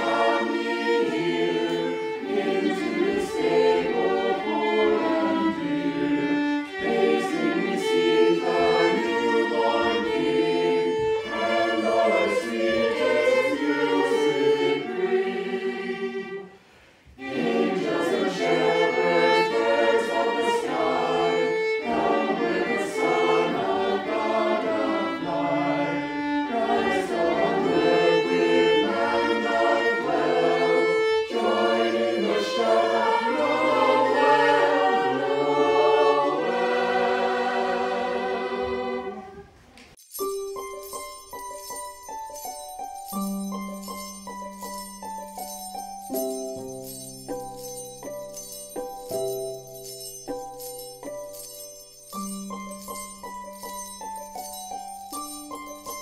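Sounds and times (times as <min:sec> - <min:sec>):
choir singing slow chords: 0:00.0 - 0:39.6.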